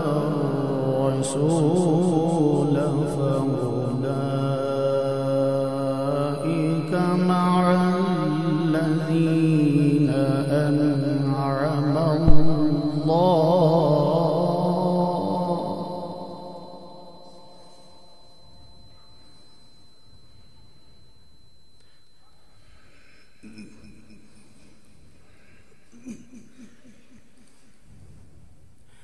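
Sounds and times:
man reciting melodically: 0.0 - 17.2
sharp thump: 12.3 - 12.8.

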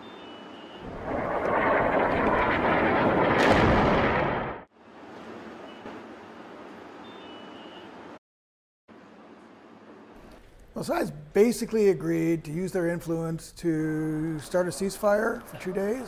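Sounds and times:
explosion roar with crack: 0.8 - 4.7.

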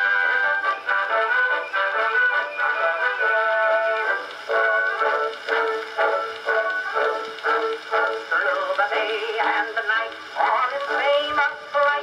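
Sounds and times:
thin phonograph music: 0.0 - 12.0.

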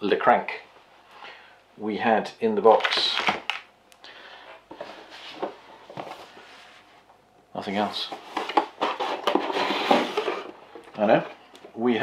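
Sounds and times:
cardboard scraping and rustling: 8.0 - 10.6.

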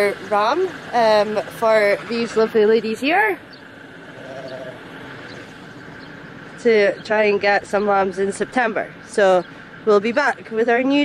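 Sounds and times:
steady background noise: 0.0 - 11.0
sheep bleating: 4.0 - 5.4.

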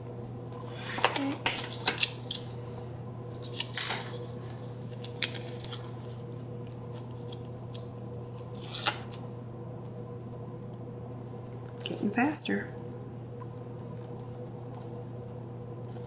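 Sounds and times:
steady low hum: 0.0 - 16.0
page turning: 0.6 - 2.5, 3.4 - 9.2.

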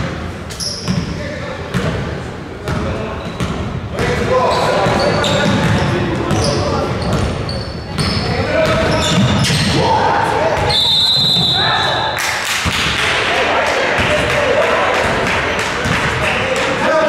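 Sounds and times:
sneaker squeaks: 0.5 - 1.2, 2.7 - 3.8, 4.4 - 9.8, 10.6 - 12.0.

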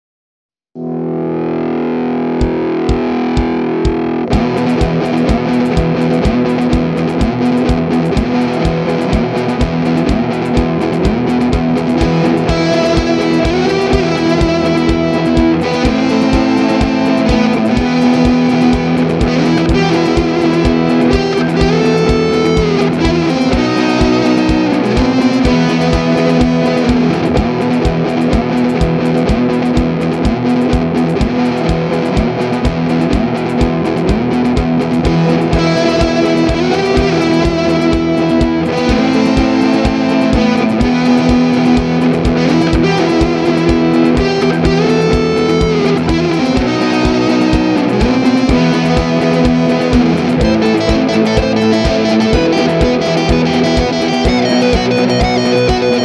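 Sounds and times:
rock music with distorted guitar: 0.8 - 56.0.

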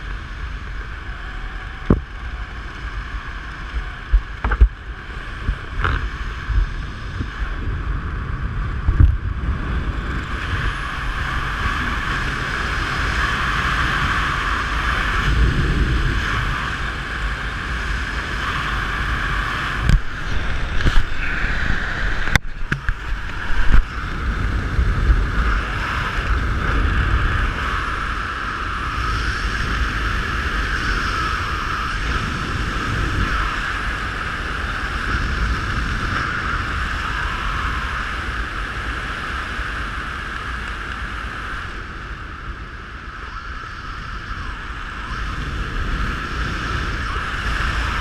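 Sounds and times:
wind rushing over microphone: 0.0 - 48.0.

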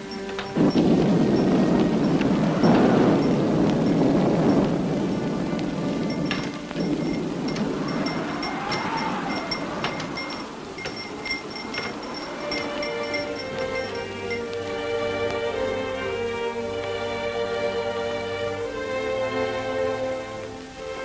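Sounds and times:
wind chime tinkling: 0.0 - 4.6, 5.9 - 14.8
heavy rain pouring: 0.0 - 21.0.

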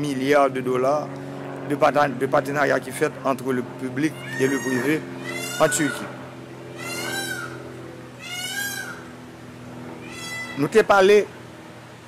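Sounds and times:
steady low hum: 0.0 - 12.0
cat meowing: 4.2 - 6.0, 6.8 - 7.6, 8.2 - 9.0, 10.0 - 10.7.

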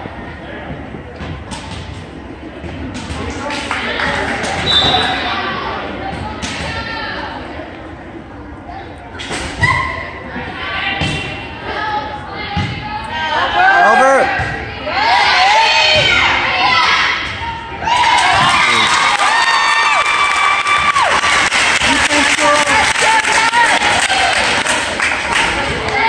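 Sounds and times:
spectators chatter echoing: 0.0 - 19.4, 20.9 - 26.0.

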